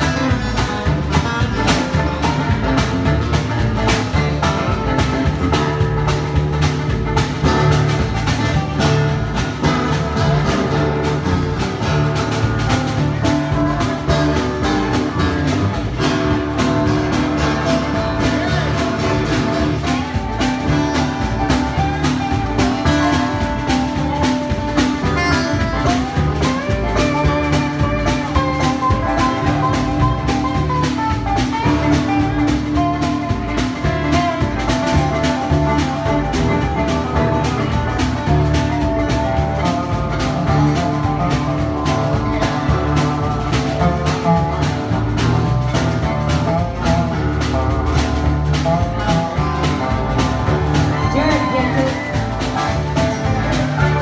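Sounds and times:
acoustic band playing: 0:00.0 - 0:54.0.

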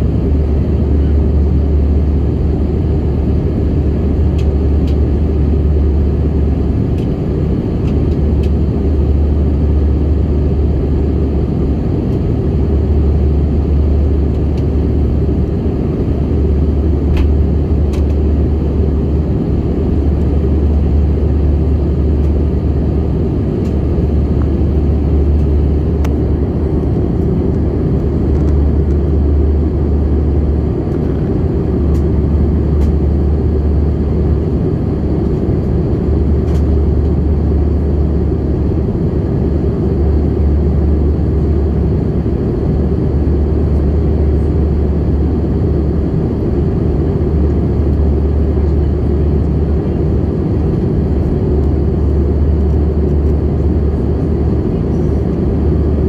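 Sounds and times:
jet engine roar in cabin: 0:00.0 - 0:56.0
low rumble: 0:00.0 - 0:56.0.

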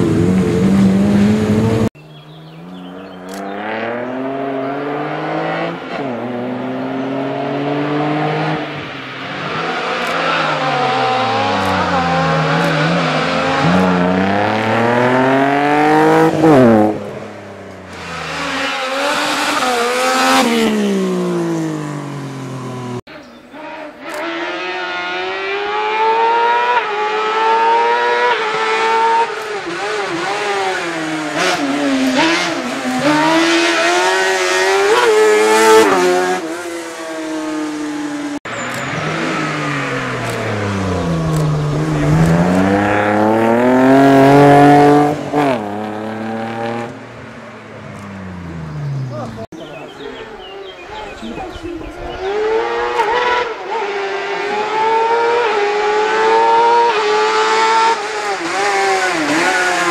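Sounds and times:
racing car engines revving: 0:00.0 - 0:59.9
tire noise: 0:00.0 - 0:59.9.

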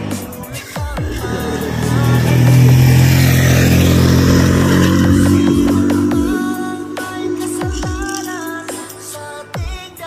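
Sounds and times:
background music: 0:00.0 - 0:10.0
motorcycle engine running: 0:00.0 - 0:10.0.

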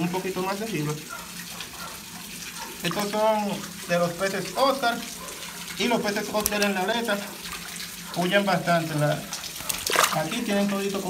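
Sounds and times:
water splashing and trickling: 0:00.0 - 0:11.0.

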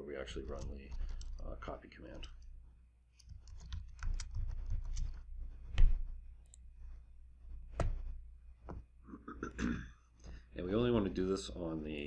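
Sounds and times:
typing on computer keyboard: 0:00.4 - 0:01.4, 0:03.2 - 0:05.2.

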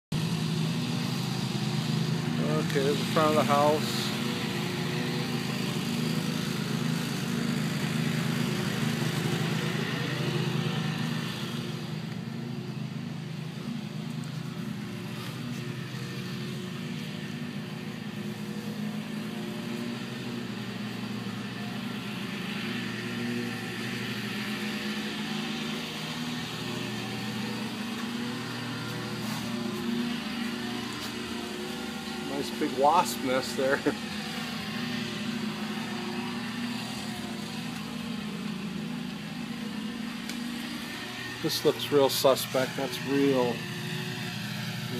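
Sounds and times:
engine running steadily: 0:00.1 - 0:44.9.

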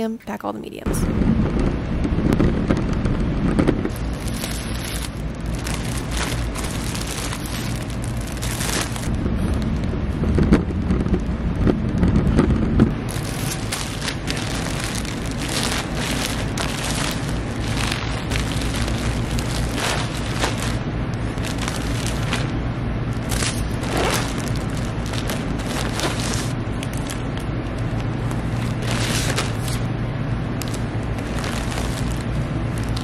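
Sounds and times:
cart wheels rumbling on concrete: 0:01.6 - 0:22.5, 0:23.2 - 0:29.8, 0:30.6 - 0:33.0
plastic packaging crackling: 0:03.9 - 0:09.9, 0:13.1 - 0:22.5, 0:23.1 - 0:29.9, 0:30.5 - 0:33.0.

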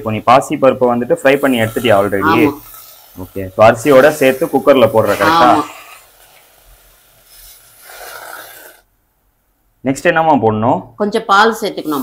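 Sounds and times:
dry grains stirred in a steel pot: 0:00.9 - 0:06.1.

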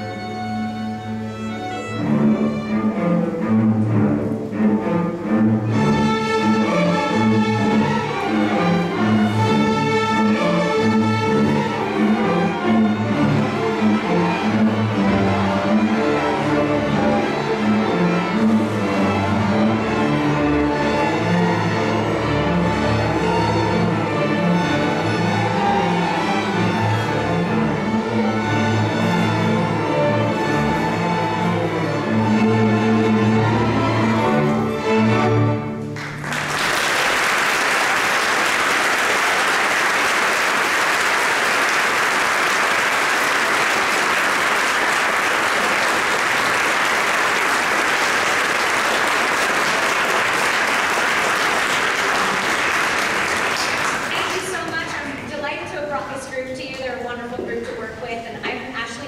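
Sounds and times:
string orchestra playing: 0:00.0 - 0:57.2
audience applause: 0:36.0 - 0:55.0.

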